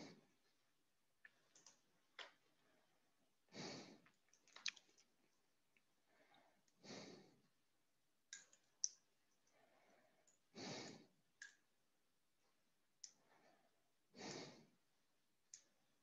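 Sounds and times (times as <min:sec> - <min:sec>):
faint breaths: 0:02.6 - 0:04.2, 0:06.0 - 0:07.6, 0:09.5 - 0:11.2, 0:13.1 - 0:14.8.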